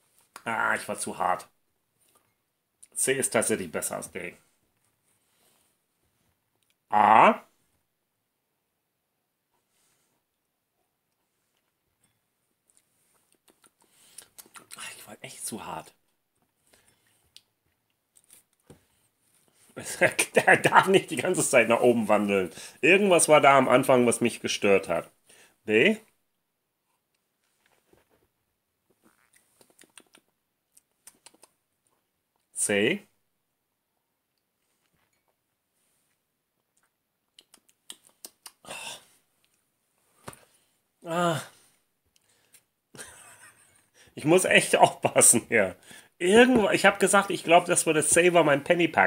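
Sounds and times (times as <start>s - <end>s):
lip and tongue smacks: 12.7s - 14.8s, 29.3s - 31.6s, 36.8s - 38.6s.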